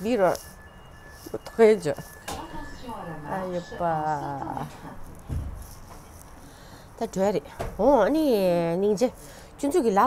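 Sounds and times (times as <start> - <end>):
woman's voice holding a tone: 1.3 - 5.0.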